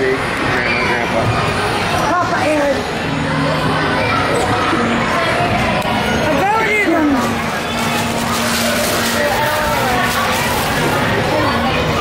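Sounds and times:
overlapping chatter of voices: 0.0s - 12.0s.

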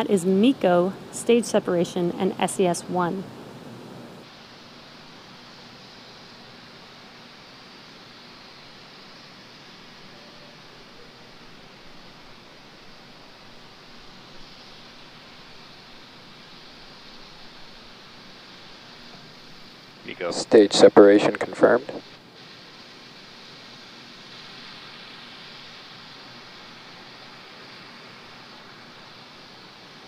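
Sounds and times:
faint steady hiss: 0.0s - 30.0s.

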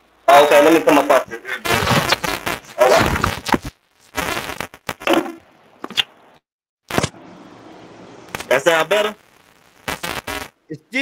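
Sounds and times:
crackly bursts over call connection: 0.0s - 5.5s, 8.3s - 11.0s
man laughing: 1.2s - 1.7s
steady hiss: 8.0s - 11.0s.

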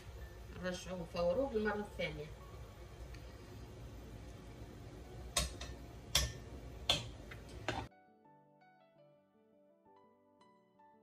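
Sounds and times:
low room hum: 0.0s - 7.9s.

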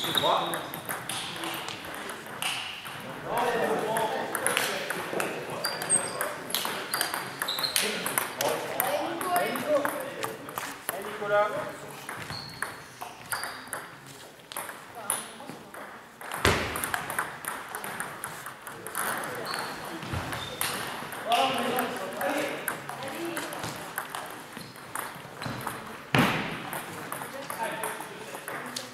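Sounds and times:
table tennis ball clicking: 12.1s - 19.6s, 20.6s - 25.9s.

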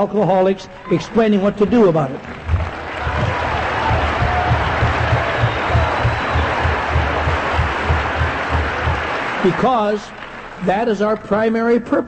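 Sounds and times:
large audience applauding: 1.8s - 11.6s.

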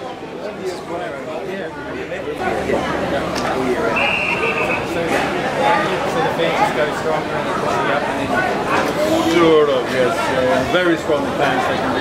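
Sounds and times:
people chattering: 0.0s - 12.0s.

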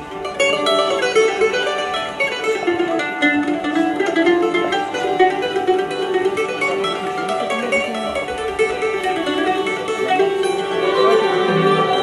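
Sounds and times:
ouds and mandolin plucked: 0.0s - 12.0s
violins: 0.0s - 12.0s.

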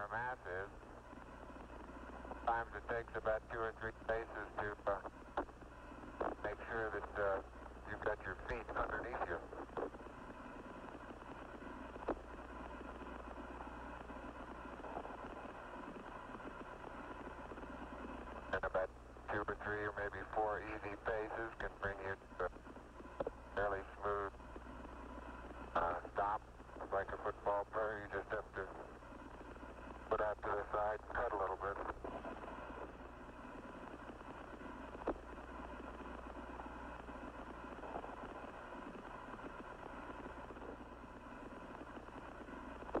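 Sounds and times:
man's voice over radio: 0.0s - 0.8s, 2.4s - 5.1s, 6.2s - 10.0s, 18.5s - 22.6s, 23.6s - 24.4s, 25.8s - 29.0s, 30.1s - 32.8s
radio hiss: 0.0s - 43.0s
radio click: 1.1s - 43.0s.

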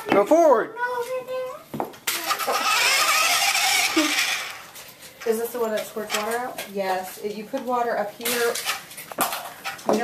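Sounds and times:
toy car electric motor whirring: 2.0s - 4.8s.

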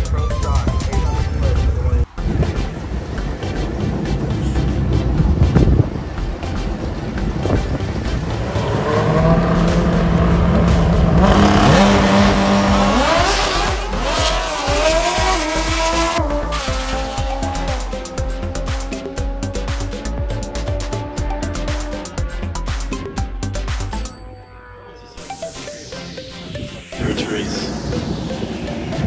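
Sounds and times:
racing car engine roaring: 1.4s - 29.0s.

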